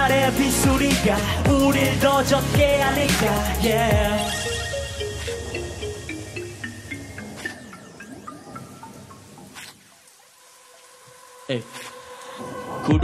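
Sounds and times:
hip hop beat: 0:00.0 - 0:08.2
plinking electronic notes: 0:02.6 - 0:09.8.

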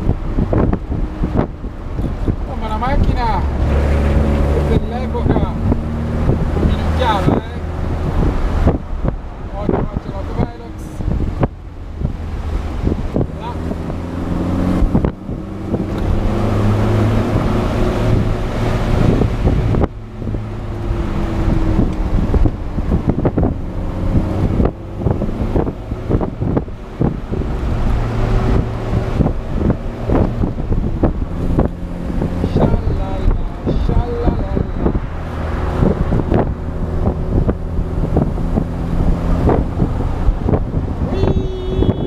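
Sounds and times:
car engine revving through gears: 0:00.0 - 0:41.1
wind buffeting microphone: 0:00.0 - 0:42.0.

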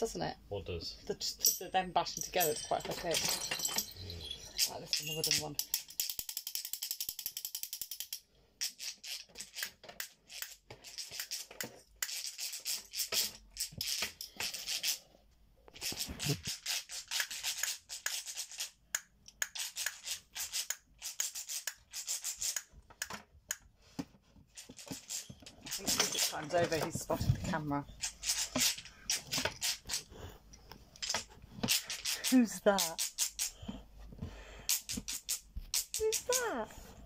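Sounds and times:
toy castanets clacking: 0:01.4 - 0:15.0, 0:15.7 - 0:23.6, 0:24.5 - 0:27.2, 0:27.9 - 0:33.7, 0:34.7 - 0:36.7.

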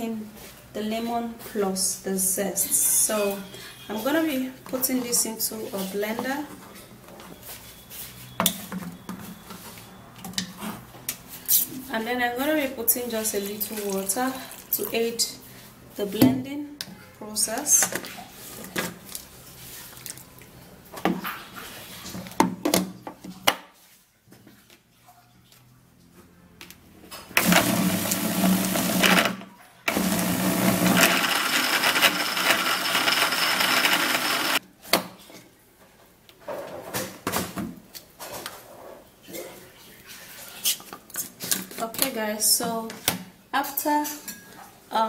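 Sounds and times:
small blender running: 0:27.4 - 0:34.6.

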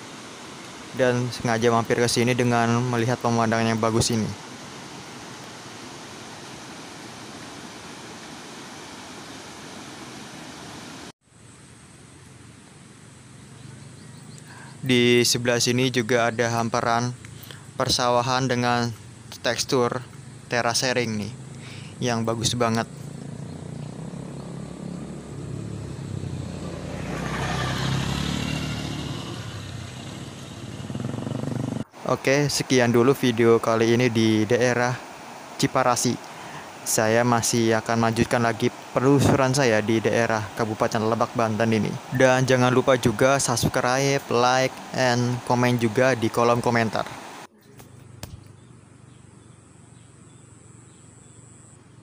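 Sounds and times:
water rushing: 0:00.0 - 0:11.1, 0:20.6 - 0:31.2, 0:31.8 - 0:47.5
steady hiss: 0:00.0 - 0:23.4, 0:26.8 - 0:48.6
vehicle engine passing: 0:22.8 - 0:31.9.

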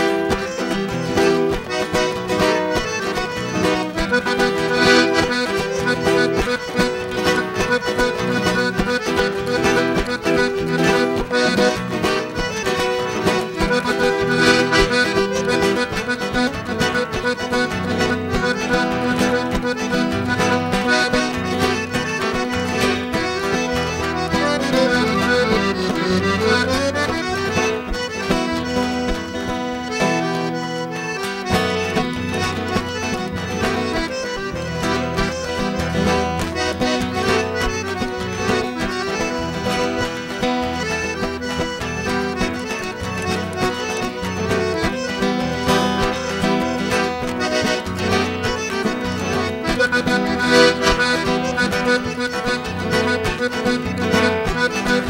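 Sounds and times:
acoustic guitars strumming: 0:00.0 - 0:55.0
piano accordion playing: 0:00.0 - 0:55.0.

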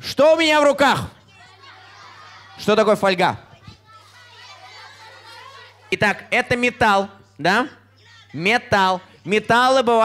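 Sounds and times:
children calling out: 0:01.2 - 0:06.0.

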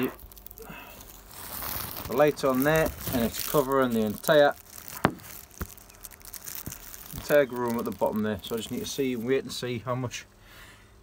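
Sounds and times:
tent fabric rustling and crinkling: 0:00.0 - 0:09.5.

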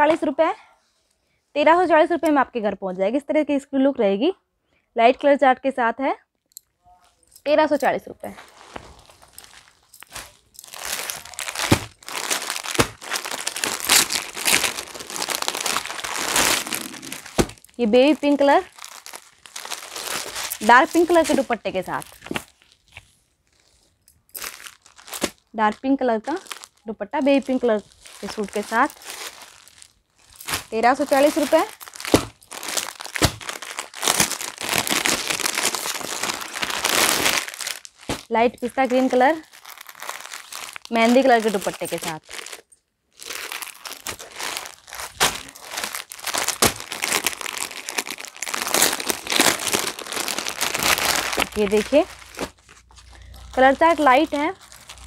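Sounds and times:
plastic packet crinkling: 0:08.4 - 0:23.7, 0:24.3 - 0:55.0.

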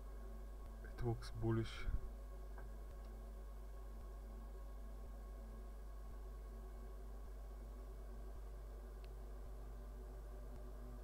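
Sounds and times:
low electrical hum: 0:00.0 - 0:11.0
faint low ticks: 0:00.5 - 0:01.0, 0:02.5 - 0:11.0.

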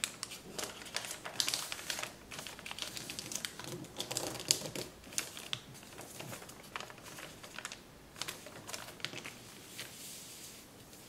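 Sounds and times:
paper crackling and rustling: 0:00.0 - 0:11.0.

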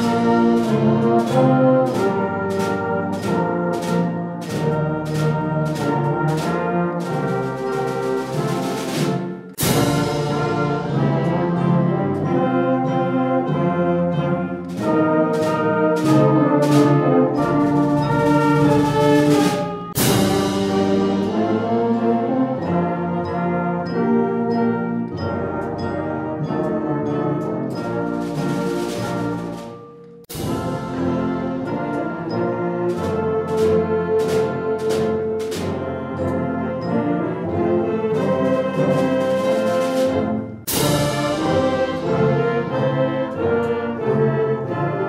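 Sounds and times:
percussion crashes: 0:00.0 - 0:11.5, 0:14.6 - 0:22.0, 0:27.8 - 0:35.9, 0:38.2 - 0:42.7
concert band playing: 0:00.0 - 0:45.0
flute: 0:00.0 - 0:45.0
trombone chords: 0:00.0 - 0:45.0.

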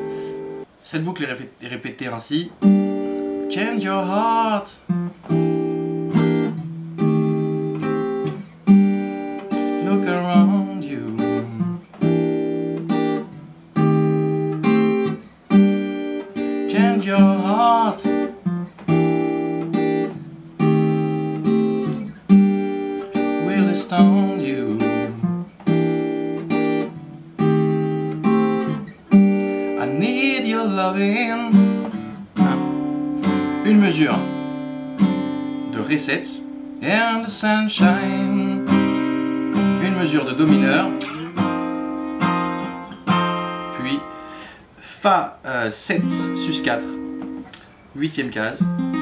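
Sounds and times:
acoustic guitar strumming: 0:00.0 - 0:00.8, 0:02.4 - 0:49.0.

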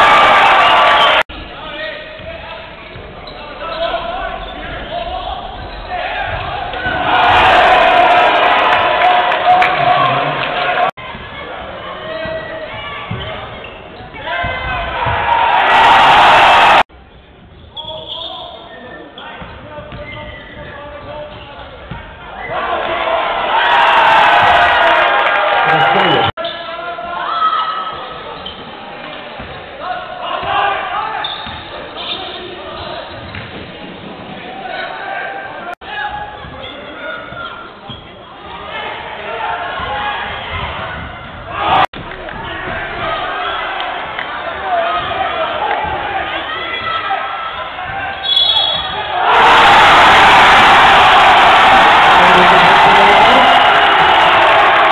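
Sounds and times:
voices of players and spectators: 0:00.0 - 0:54.9
basketball bouncing on wooden court: 0:12.1 - 0:13.8, 0:19.4 - 0:22.1.

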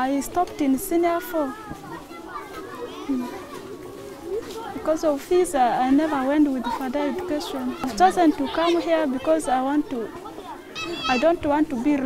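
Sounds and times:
woman speaking: 0:00.0 - 0:01.6, 0:04.8 - 0:10.1, 0:11.0 - 0:12.0
children chattering and calling: 0:00.0 - 0:12.0.

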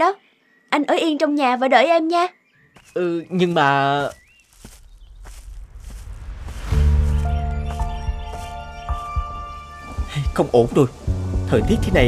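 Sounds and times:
footsteps walking away: 0:02.8 - 0:10.1
low rumble: 0:05.0 - 0:12.0.

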